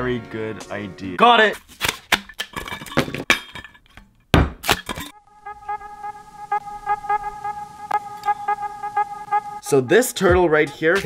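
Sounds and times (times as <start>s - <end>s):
background music with steady beat: 5.2s - 11.0s.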